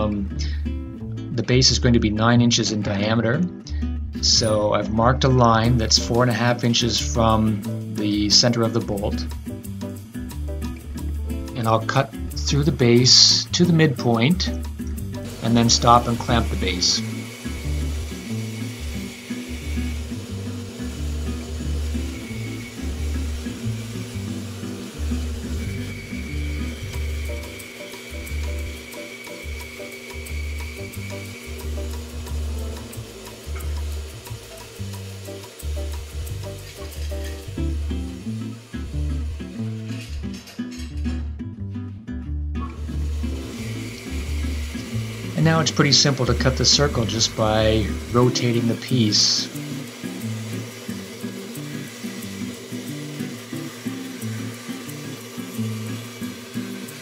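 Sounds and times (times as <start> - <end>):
bandsaw cutting wood: 14.2 - 40.5, 42.7 - 57.0.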